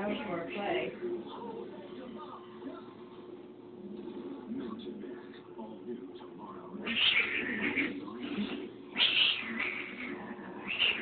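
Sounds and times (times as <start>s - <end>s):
cat yowling: 6.8s - 8.0s, 9.0s - 11.0s.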